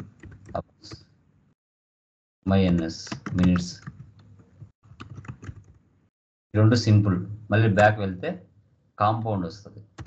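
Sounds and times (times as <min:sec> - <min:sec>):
keyboard key clicks: 0:05.0 - 0:05.8.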